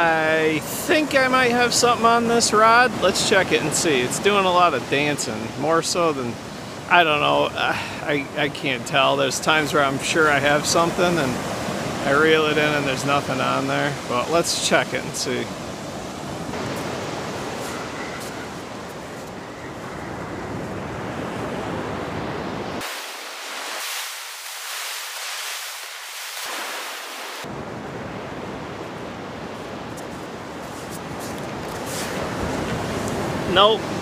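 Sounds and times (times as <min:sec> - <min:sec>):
ocean surf breaking: 0:00.0 - 0:34.0.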